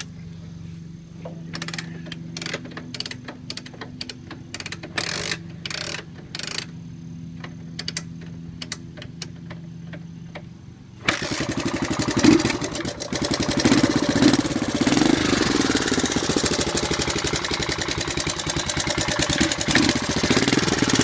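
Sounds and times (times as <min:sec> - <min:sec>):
engine kick-started and revving: 0:11.0 - 0:21.0.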